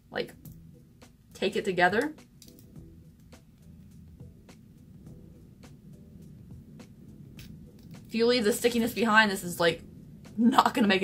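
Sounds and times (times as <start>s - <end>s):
low steady hum: 0.0s - 11.0s
tweezers clicking and tape crinkling: 2.0s - 3.7s, 7.4s - 8.2s.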